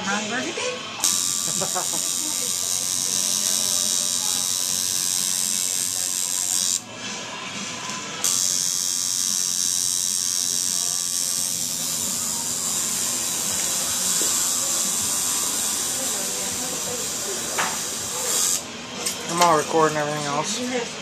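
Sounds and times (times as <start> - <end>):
tattoo machine buzzing: 0.0 - 7.2, 7.9 - 19.7.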